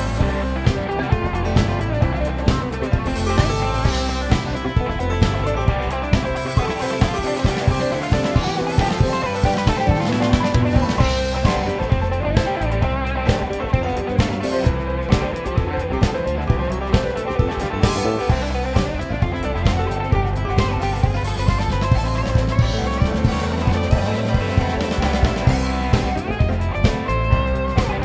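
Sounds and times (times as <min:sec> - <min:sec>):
bass guitar: 0:00.0 - 0:28.0
drum kit steady beat: 0:00.0 - 0:28.0
electric guitar lines: 0:00.0 - 0:28.0.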